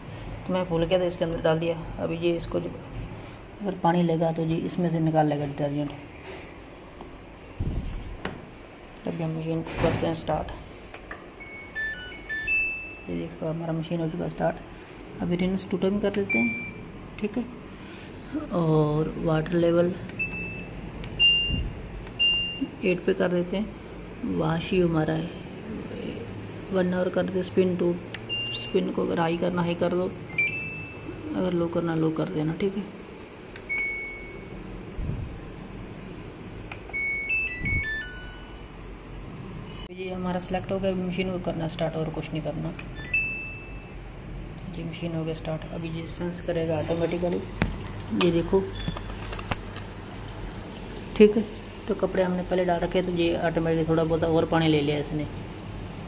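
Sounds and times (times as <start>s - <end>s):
electronic melody of short notes: 11.4s - 13.1s
washing machine power-on chime: 11.4s - 13.3s, 28.3s - 29.0s, 30.3s - 31.2s, 33.7s - 34.6s, 36.9s - 38.8s, 43.0s - 43.9s.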